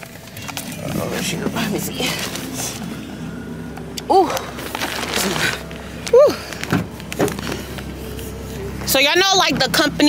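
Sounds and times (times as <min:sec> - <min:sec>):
van engine idling: 0:00.0 - 0:10.0.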